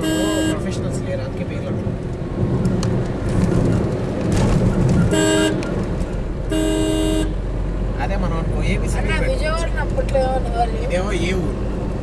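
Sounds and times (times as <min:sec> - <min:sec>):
car horn honking: 0:00.0 - 0:01.0, 0:05.0 - 0:05.8, 0:06.4 - 0:07.5
car driving rumble: 0:00.0 - 0:12.0.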